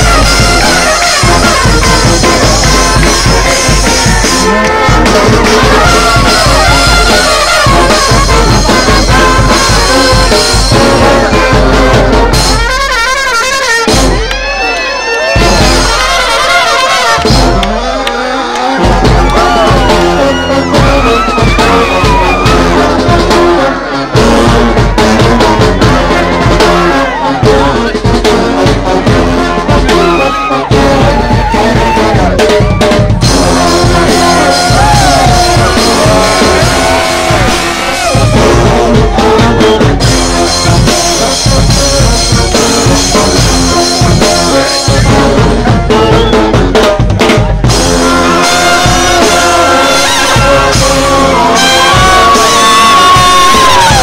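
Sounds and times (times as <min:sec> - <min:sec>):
brass horns: 0:00.0 - 0:54.0
drums: 0:00.0 - 0:54.0.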